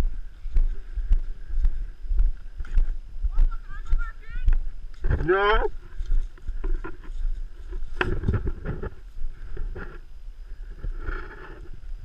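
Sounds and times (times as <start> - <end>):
wind rumbling on microphone: 0.0 - 12.0
gear knocks and rustles: 4.9 - 10.1.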